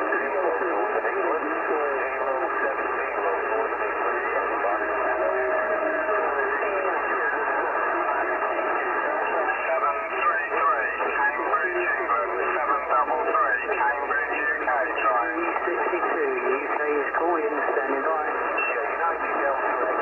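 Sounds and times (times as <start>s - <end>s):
radio voices calling over one another: 0.0s - 20.0s.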